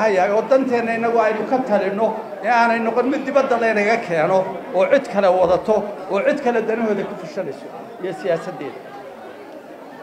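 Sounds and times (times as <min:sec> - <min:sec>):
man speaking into microphones: 0:00.0 - 0:08.8.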